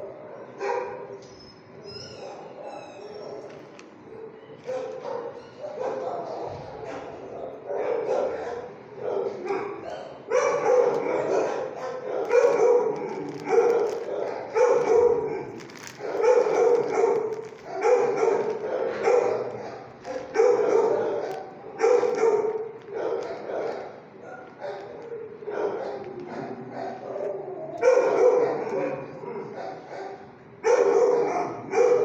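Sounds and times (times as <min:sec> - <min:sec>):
dog barking: 0:00.0 - 0:01.2, 0:02.2 - 0:32.0.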